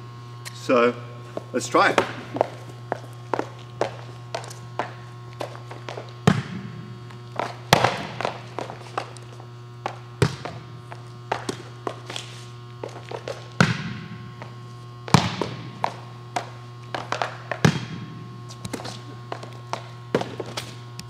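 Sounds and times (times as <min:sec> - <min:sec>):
shoes stepping on indoor court: 0:01.2 - 0:21.0
heavy landings thudding: 0:05.8 - 0:09.1.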